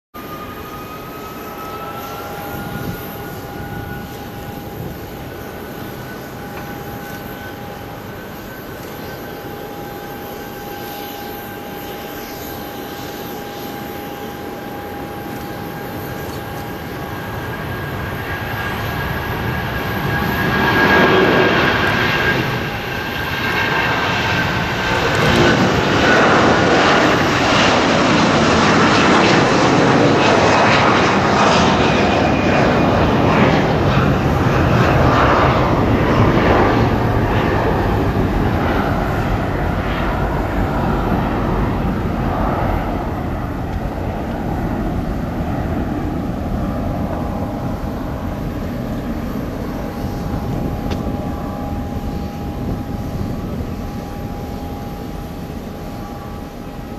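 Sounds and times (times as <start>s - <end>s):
high engine whine: 0.2s - 56.9s
jet airliner taking off: 0.2s - 56.9s.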